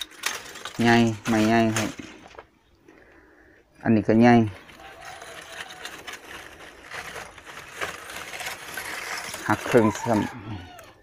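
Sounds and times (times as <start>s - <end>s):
charcoal lumps scraping and clinking: 0.0s - 2.4s, 4.3s - 11.0s.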